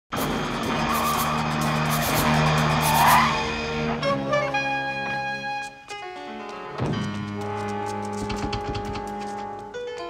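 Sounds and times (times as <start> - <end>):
tyres squealing: 0.8 - 5.0.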